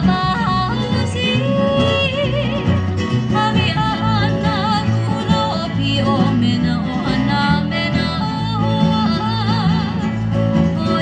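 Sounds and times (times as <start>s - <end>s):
strummed ukuleles and acoustic guitar: 0.0s - 11.0s
woman singing in a high voice: 0.0s - 11.0s.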